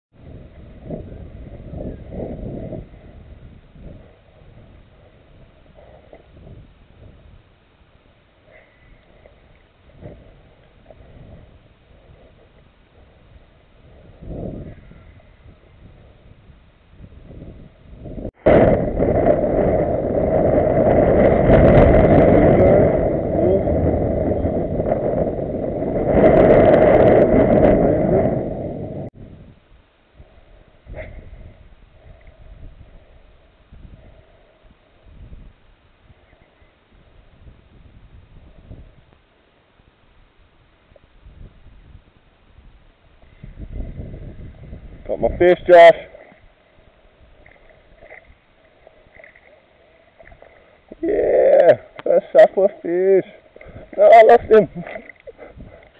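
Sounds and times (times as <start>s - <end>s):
wind buffeting microphone: 0.1s - 39.4s, 40.1s - 55.9s.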